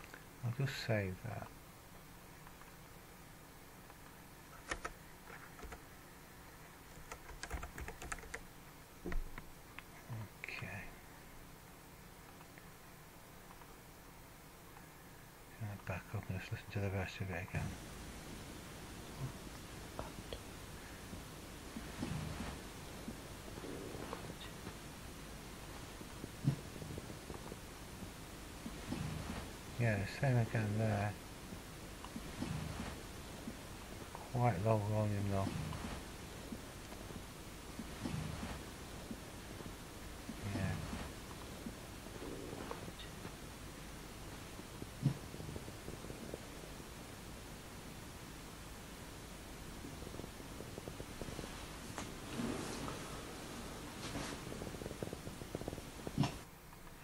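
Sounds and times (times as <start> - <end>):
computer keyboard key clicks: 4.6 - 4.9, 5.6 - 5.8, 7.0 - 8.4
faint low rumble: 8.4 - 57.0.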